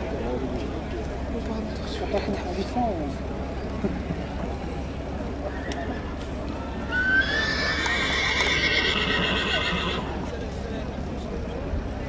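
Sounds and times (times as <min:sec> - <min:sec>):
horse neighing: 0:06.9 - 0:10.2.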